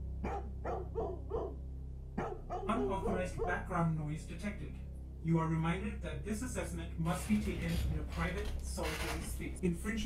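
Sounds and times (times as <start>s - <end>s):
steady low hum: 0.0s - 10.0s
dog barking: 0.2s - 1.6s, 2.2s - 3.6s.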